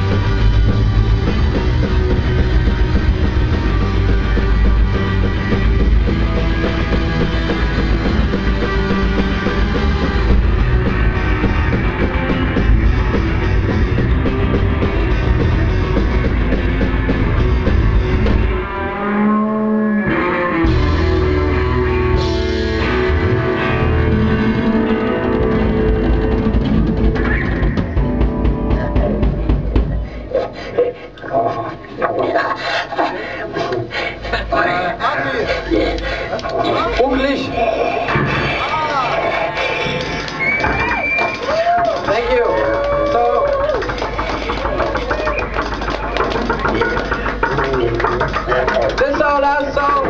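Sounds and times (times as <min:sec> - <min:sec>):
live rock band playing: 0:00.0 - 0:30.3, 0:38.2 - 0:50.0.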